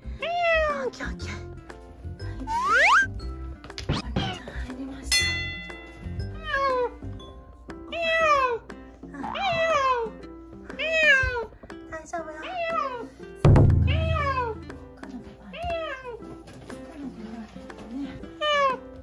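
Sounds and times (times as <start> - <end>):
cat meowing: 9.2 - 10.2, 10.8 - 11.5, 12.4 - 13.2, 13.9 - 14.6
loud thump: 13.5 - 14.4.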